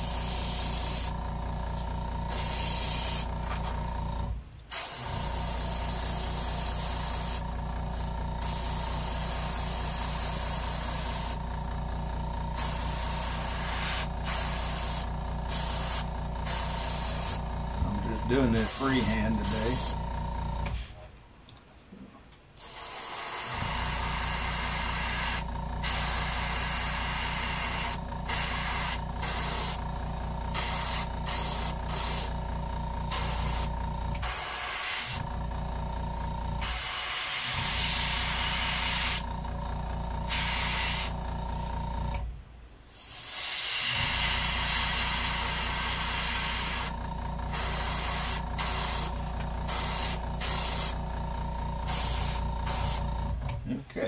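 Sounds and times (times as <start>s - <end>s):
airbrush spraying hissing air: 0.0s - 3.5s, 4.7s - 11.4s, 12.5s - 17.4s, 18.4s - 20.0s, 22.6s - 29.9s, 30.5s - 32.4s, 33.1s - 35.2s, 36.1s - 39.3s, 40.2s - 41.2s, 42.9s - 51.0s, 51.8s - 53.0s.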